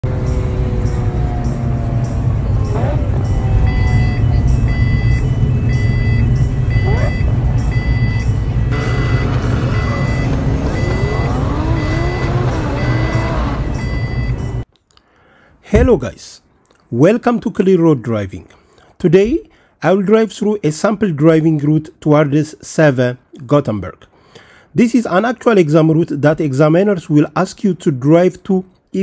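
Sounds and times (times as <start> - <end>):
rising and falling tones: 0.0 - 14.6
street traffic rumble: 0.0 - 14.7
pedestrian crossing beeps: 0.1 - 14.6.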